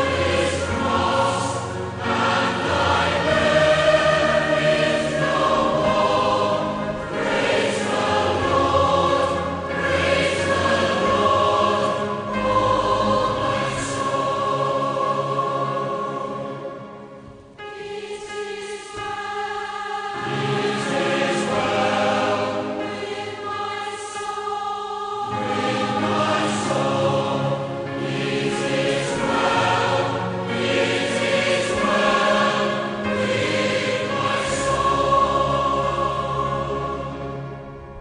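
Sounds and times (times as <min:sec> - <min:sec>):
choir singing held chords: 0:00.0 - 0:38.0.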